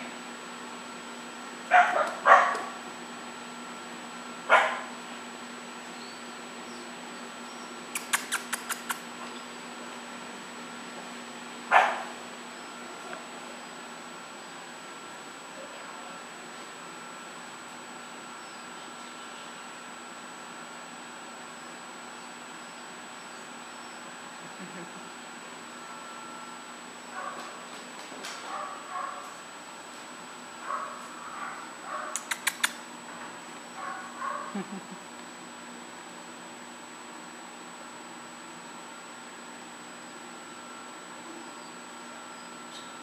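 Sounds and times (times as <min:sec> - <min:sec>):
dog barking: 0:01.7 - 0:02.8, 0:04.5 - 0:04.9, 0:11.7 - 0:12.2, 0:27.2 - 0:27.5, 0:28.4 - 0:29.3, 0:30.6 - 0:32.2, 0:33.8 - 0:34.6
sharp clicks: 0:08.0 - 0:09.0, 0:32.1 - 0:32.8.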